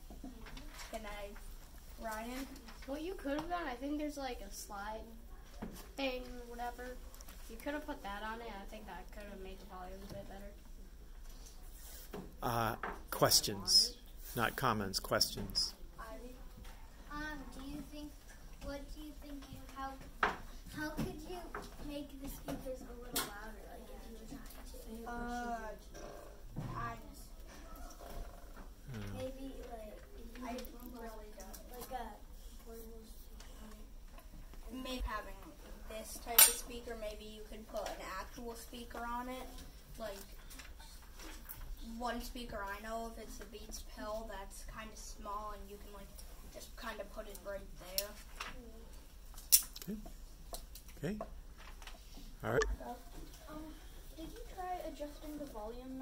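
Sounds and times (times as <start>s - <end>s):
child speaking: 15.4s - 28.0s, 28.9s - 33.9s, 52.5s - 56.0s
person saying umm: 28.9s - 29.2s.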